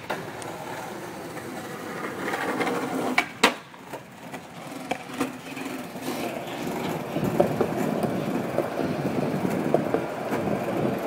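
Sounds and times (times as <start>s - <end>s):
skateboard wheels rolling on concrete: 0.0s - 11.0s.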